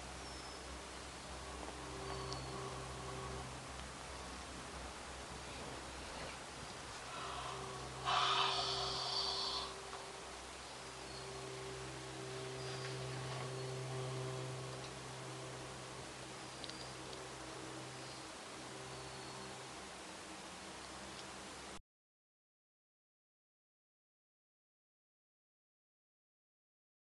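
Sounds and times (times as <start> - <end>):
cable car hum: 0.0 - 21.8
rushing noise: 6.8 - 12.6.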